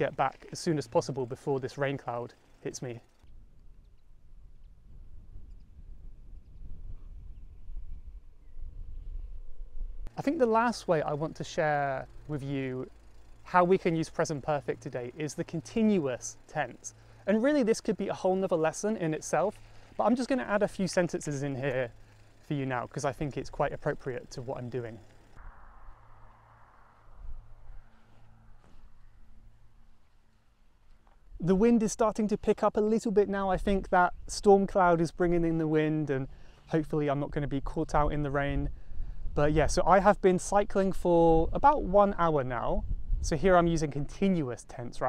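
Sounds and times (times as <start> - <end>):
wind buffeting microphone: 3.3 - 10.2, 25.3 - 28.0, 37.4 - 44.4.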